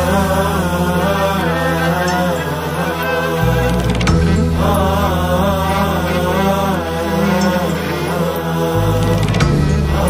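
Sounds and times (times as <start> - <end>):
low drone notes: 0.0 - 10.0
wordless chanted vocal: 0.0 - 10.0.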